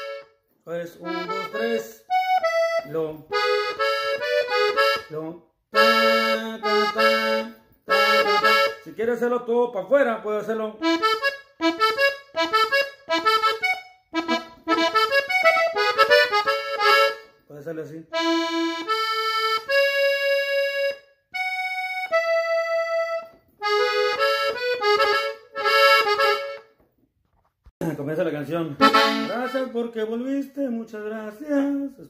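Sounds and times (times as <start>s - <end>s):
button accordion melody: 0.0s - 9.3s, 10.5s - 26.9s, 28.5s - 30.2s.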